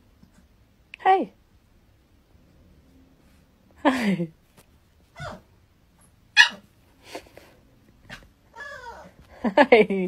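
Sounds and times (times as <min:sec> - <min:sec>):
puppy barking high-pitched: 0:05.2 - 0:05.5, 0:06.3 - 0:06.7.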